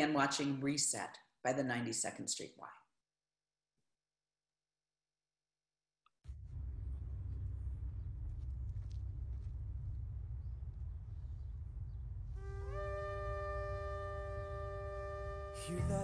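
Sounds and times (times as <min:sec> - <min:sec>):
low microphone rumble: 0:06.3 - 0:16.0
ram's horns blasting: 0:11.6 - 0:16.0.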